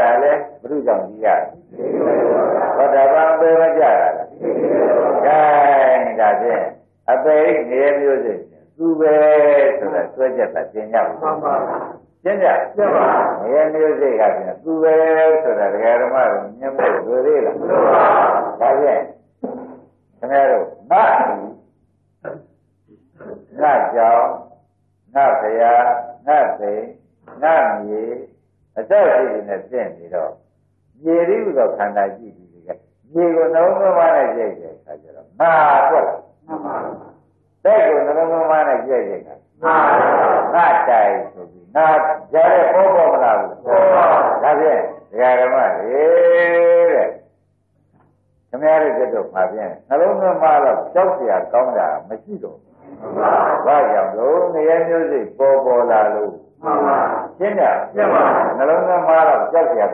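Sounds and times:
man preaching: 0.0s - 21.6s, 22.2s - 47.3s, 48.5s - 59.9s
man giving a sermon: 0.0s - 47.3s, 48.5s - 59.9s.

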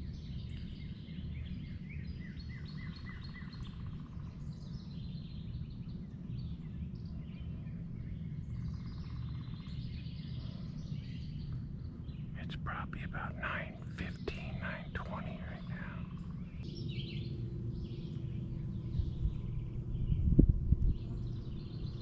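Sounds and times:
songbirds singing: 0.0s - 22.0s
steady low rumble: 3.7s - 22.0s.

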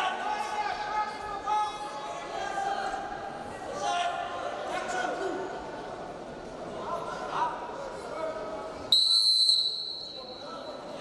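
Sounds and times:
referee's whistle blast: 8.9s - 10.5s.

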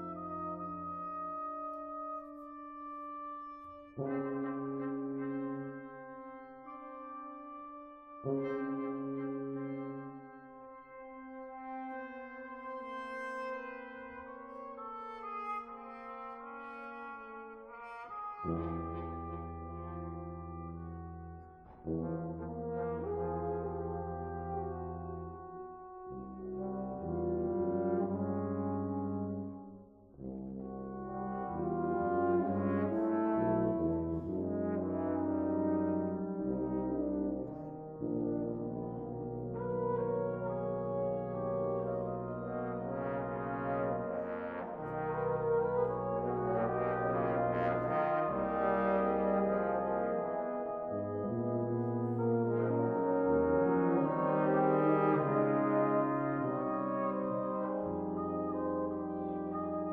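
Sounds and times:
brass quintet sustained chords: 0.0s - 59.9s.

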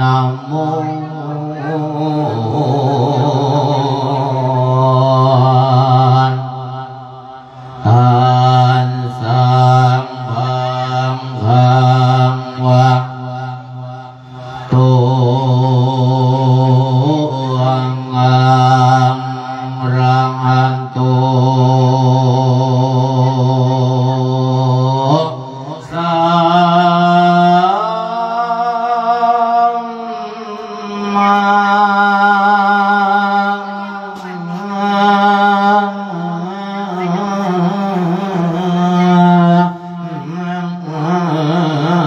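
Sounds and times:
man chanting into a microphone: 0.0s - 42.0s.

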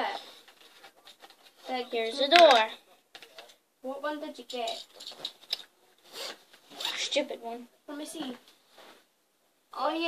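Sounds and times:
zipper being pulled: 6.1s - 7.1s.

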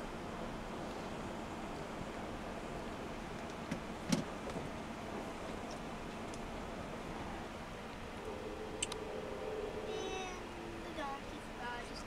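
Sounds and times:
train ride noise: 0.0s - 12.0s.

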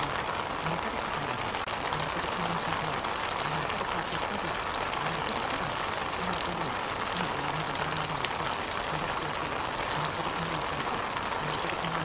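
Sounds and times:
low indistinct speech: 0.0s - 12.0s.

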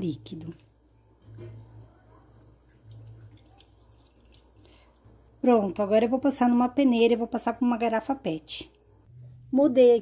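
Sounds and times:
low steady hum: 0.0s - 10.0s
liquid dripping and splashing: 2.6s - 5.1s.

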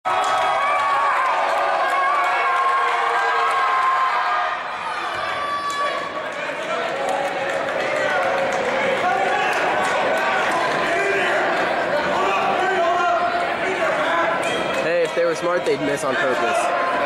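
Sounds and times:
spectators talking and calling out: 0.1s - 17.0s.

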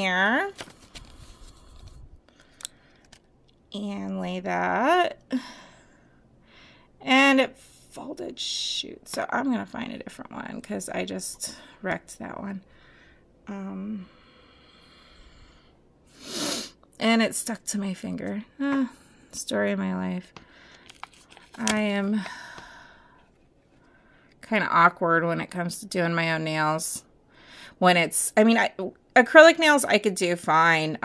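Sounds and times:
plastic sticker sheet rustle: 0.5s - 2.0s, 20.7s - 21.8s.

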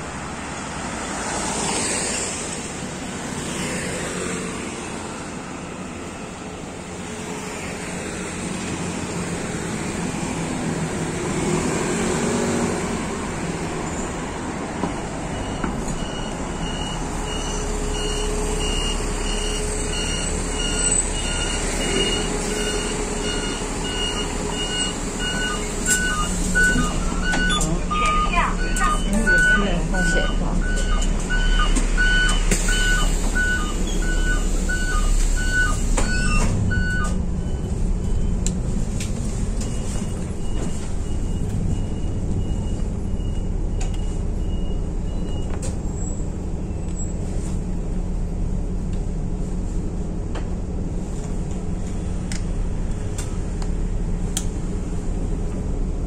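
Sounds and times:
diesel bus engine idling: 12.1s - 56.0s
electronic warning beep: 15.3s - 38.4s.

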